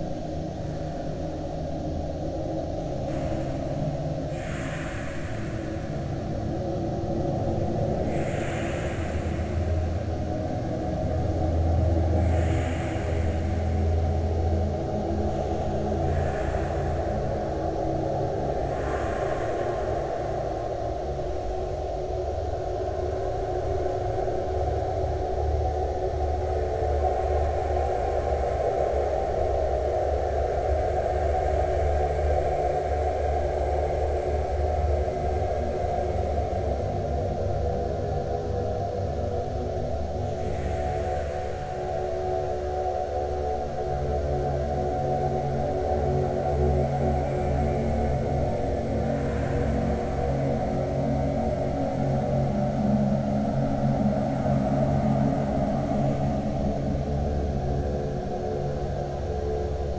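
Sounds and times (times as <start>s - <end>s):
muffled rumbling ambient music: 0.0s - 59.9s.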